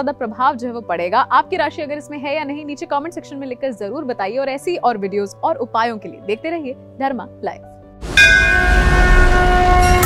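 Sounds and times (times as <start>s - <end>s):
ringing bell-like tones: 8.2s - 10.0s.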